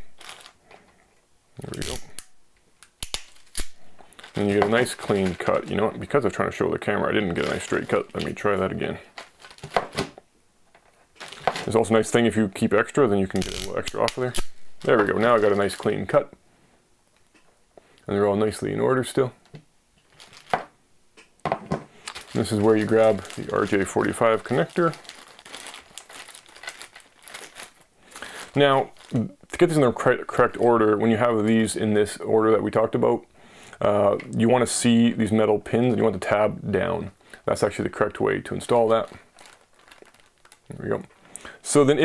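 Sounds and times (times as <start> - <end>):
knocks and rustles on wooden table: 21.4 - 21.9.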